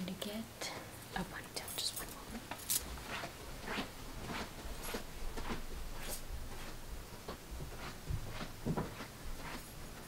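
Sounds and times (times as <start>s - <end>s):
bangle bracelets clinking: 1.7s - 2.9s.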